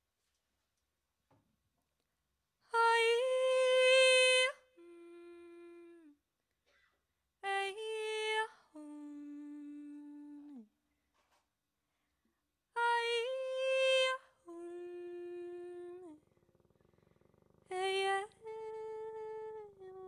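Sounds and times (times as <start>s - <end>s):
woman singing unaccompanied: 2.7s - 6.2s, 7.4s - 10.8s, 12.7s - 16.2s, 17.6s - 20.0s.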